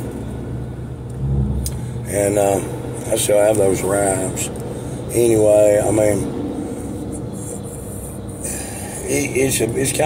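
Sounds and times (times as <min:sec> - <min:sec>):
car cabin rumble: 0:01.1 - 0:02.6.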